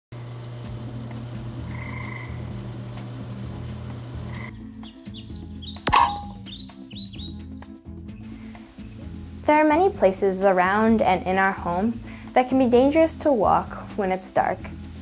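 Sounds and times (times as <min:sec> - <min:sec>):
crickets chirping: 0:00.2 - 0:04.6.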